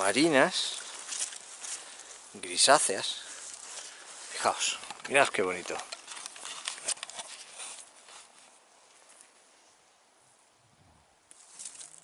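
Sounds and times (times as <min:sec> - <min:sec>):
footsteps on stony ground: 0:00.0 - 0:09.4, 0:11.3 - 0:12.0.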